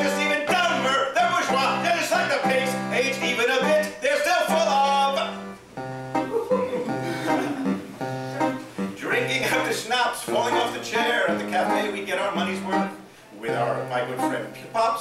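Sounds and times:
electronic keyboard playing chords: 0:00.0 - 0:14.8.

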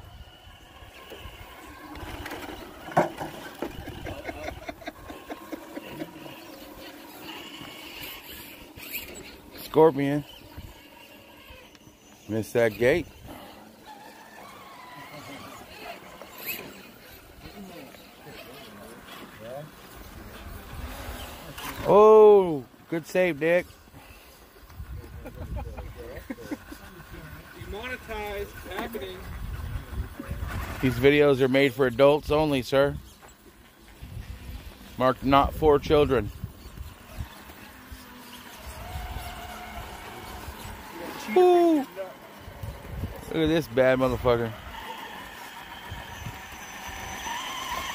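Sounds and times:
electric motor and gears whining: 0:00.0 - 0:47.9.

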